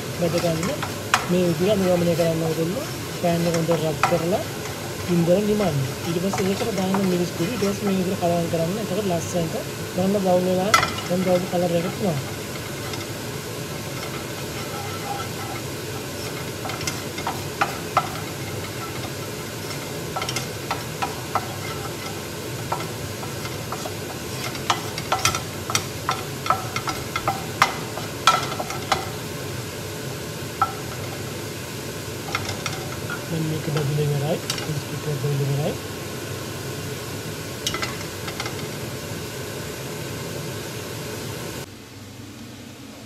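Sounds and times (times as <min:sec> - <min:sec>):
wooden spoon scraping a pan: 0:00.0 - 0:08.8, 0:10.6 - 0:29.4, 0:30.6 - 0:31.4, 0:32.2 - 0:34.9
steady hiss: 0:00.0 - 0:43.0
spoon tapping against pan: 0:10.7 - 0:11.6, 0:14.0 - 0:29.2, 0:30.6 - 0:31.2.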